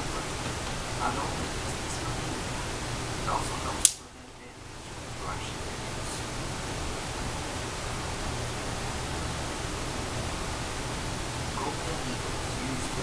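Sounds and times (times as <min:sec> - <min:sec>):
steady hiss: 0:00.0 - 0:13.0.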